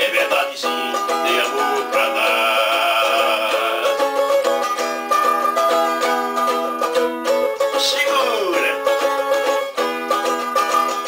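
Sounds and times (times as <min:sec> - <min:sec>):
small string instrument strummed: 0:00.0 - 0:11.0.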